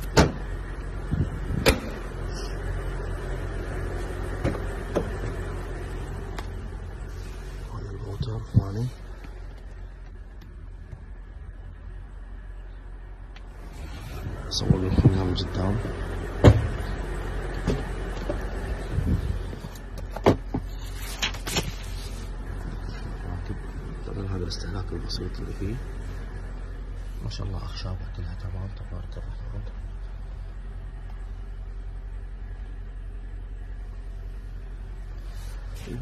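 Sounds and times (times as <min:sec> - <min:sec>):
steady low hum: 0:00.0 - 0:36.0
loud sharp knocks of car body: 0:00.1 - 0:00.4, 0:01.6 - 0:02.0, 0:16.4 - 0:16.8.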